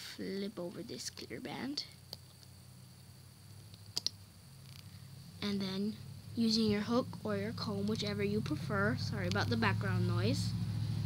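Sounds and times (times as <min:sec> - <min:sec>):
faint low hum: 0:00.0 - 0:11.0.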